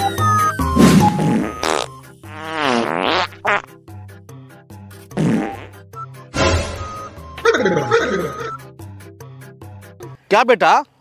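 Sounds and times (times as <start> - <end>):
background music: 0.0 - 10.6
farts: 0.8 - 3.7, 5.2 - 5.8.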